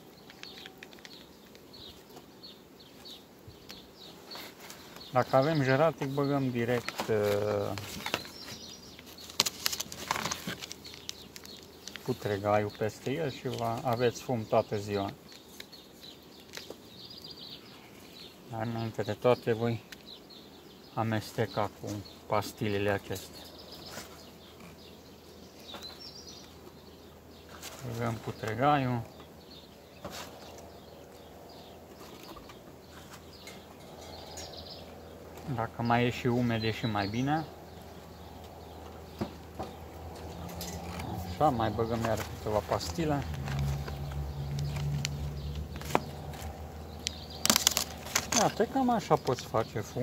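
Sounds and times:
faint bird chirps: 10.9s - 50.0s
light rustles: 27.4s - 29.3s, 30.0s - 35.6s.

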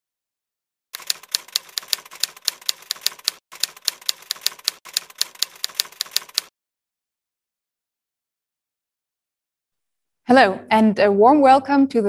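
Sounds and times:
typewriter keys clicking: 1.0s - 6.5s.

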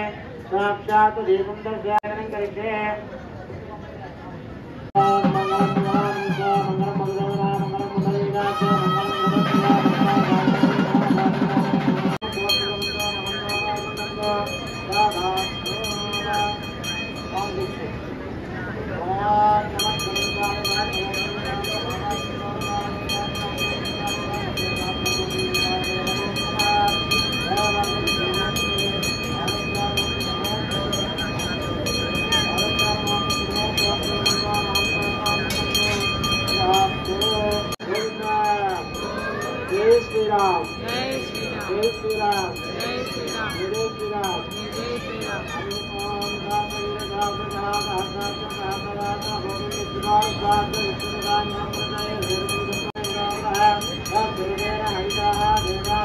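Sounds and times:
high-pitched ringing tone: 5.0s - 10.6s, 12.2s - 18.3s, 19.4s - 56.0s
man chanting: 5.0s - 16.7s, 19.0s - 56.0s.

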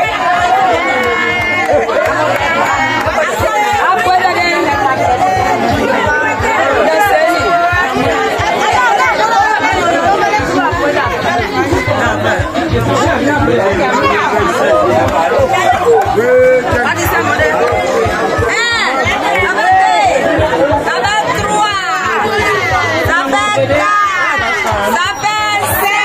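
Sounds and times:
crowd talking and calling: 0.0s - 26.0s
music with low beat: 0.0s - 26.0s.

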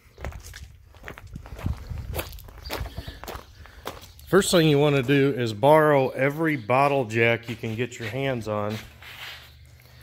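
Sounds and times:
footsteps on gravel and concrete: 0.0s - 10.0s.

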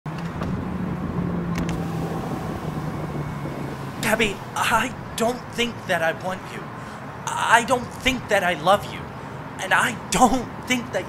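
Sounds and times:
car engine idling: 0.4s - 7.3s.

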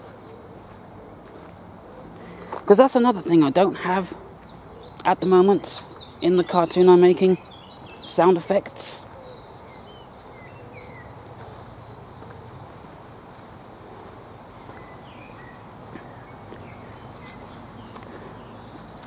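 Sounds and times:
distant traffic rumble: 0.0s - 19.0s
small birds chirping: 0.0s - 19.0s.

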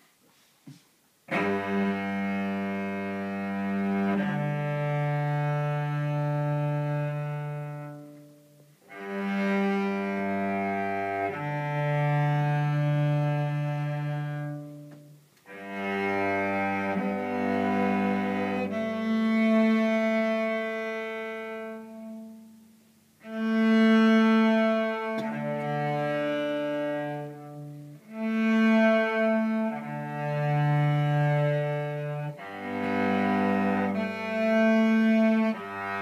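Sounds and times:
cello playing long low notes: 1.3s - 36.0s.

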